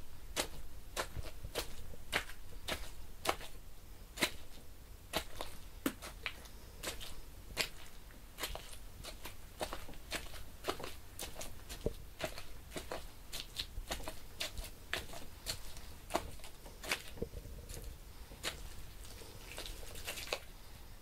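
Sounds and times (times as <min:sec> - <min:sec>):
hand slapping meat: 0:00.3 - 0:20.5.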